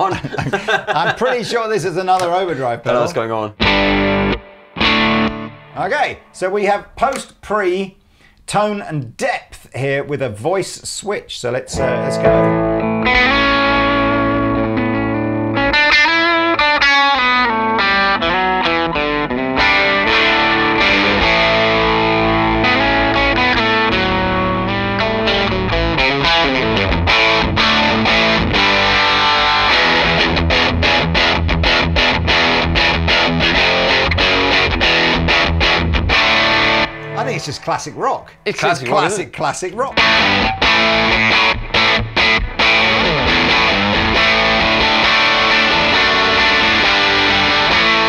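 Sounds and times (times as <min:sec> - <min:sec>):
overdriven electric guitar: 0:03.5 - 0:06.4, 0:11.7 - 0:37.7, 0:40.0 - 0:48.0.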